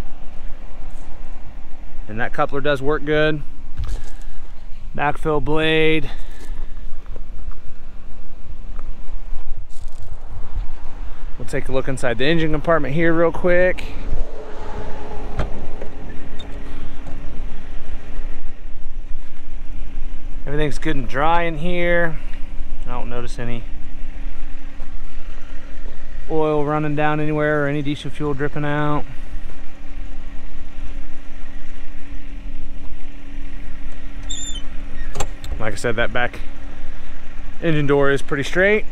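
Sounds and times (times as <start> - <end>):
diesel engine idling: 0.0 - 38.9
wind buffeting microphone: 6.5 - 26.3.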